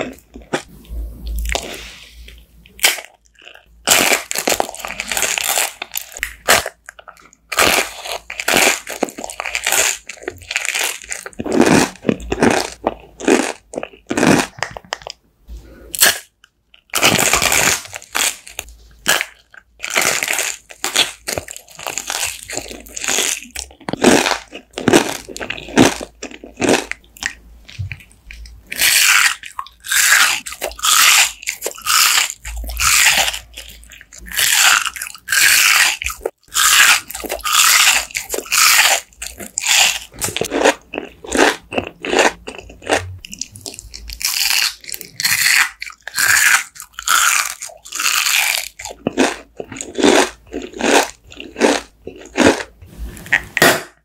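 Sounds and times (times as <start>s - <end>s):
chewing crunchy sweets: 0.0s - 54.0s.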